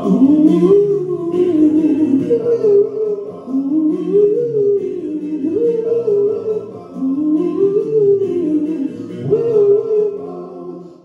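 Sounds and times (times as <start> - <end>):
instrumental backing track: 0.0 - 11.0
man singing ballad: 0.0 - 11.0.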